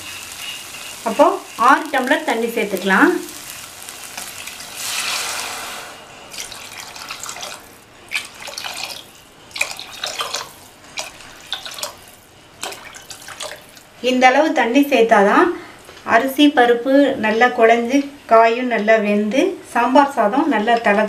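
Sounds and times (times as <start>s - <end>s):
water splashing into pot: 6.3s - 13.9s.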